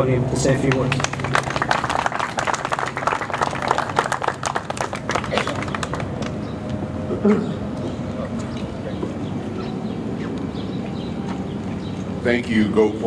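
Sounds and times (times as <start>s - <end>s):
audience applauding: 0.6s - 6.6s.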